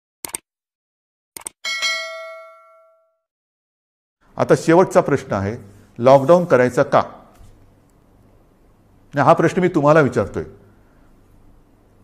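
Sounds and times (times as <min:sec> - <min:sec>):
bell ding ringing: 0:01.6 - 0:03.2.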